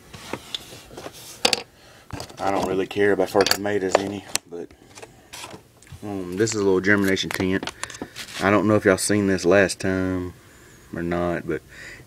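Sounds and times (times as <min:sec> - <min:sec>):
faint handling rustle: 0:00.0 - 0:08.8.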